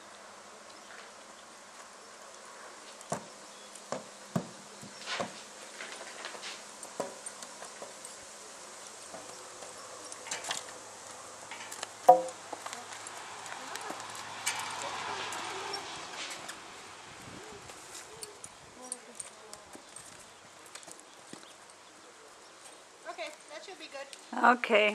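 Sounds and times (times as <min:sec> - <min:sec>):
hoof steps on dirt: 0:01.7 - 0:10.7, 0:11.6 - 0:16.7, 0:17.4 - 0:24.2
horse tack sounds: 0:01.7 - 0:24.2
sharp loud knock: 0:12.1 - 0:12.4.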